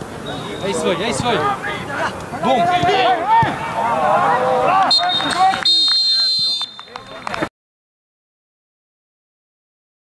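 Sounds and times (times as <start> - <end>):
players' voices: 0.2 - 7.5
referee's whistle blasts: 4.8 - 7.1.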